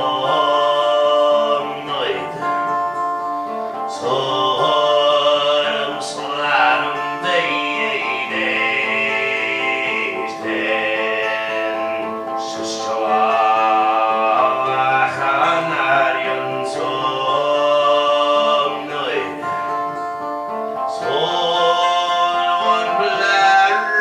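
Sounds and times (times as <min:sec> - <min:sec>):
strummed guitar: 0:00.0 - 0:24.0.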